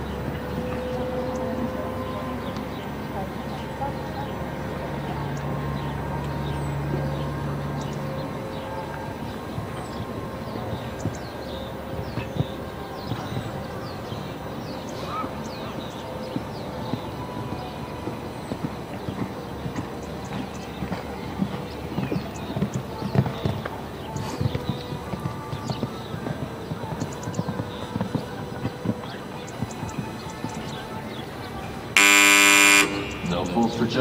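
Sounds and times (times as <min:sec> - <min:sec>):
birds chirping: 0:00.0 - 0:34.0
horse hoofbeats on sand: 0:06.3 - 0:31.3
loud electronic tone: 0:32.0 - 0:34.0.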